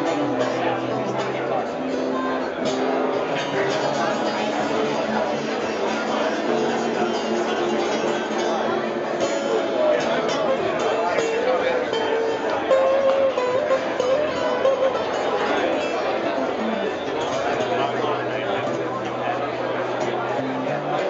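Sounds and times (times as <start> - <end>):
crowd chatter: 0.0 - 21.0
guitar music: 0.0 - 21.0.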